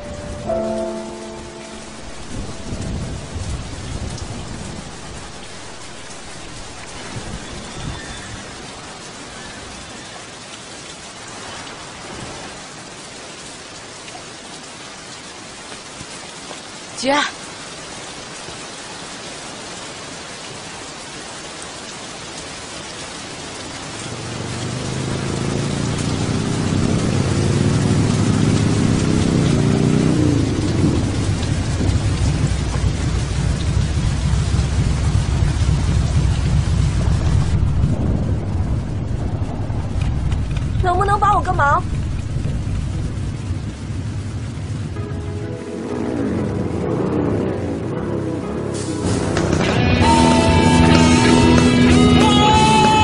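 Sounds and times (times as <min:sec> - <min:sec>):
low rumbles: 0:00.0 - 0:09.2, 0:23.8 - 0:53.0
heavy rain on pavement: 0:00.0 - 0:53.0
motorcycle engines approaching: 0:24.1 - 0:34.0
person calling out: 0:52.0 - 0:53.0.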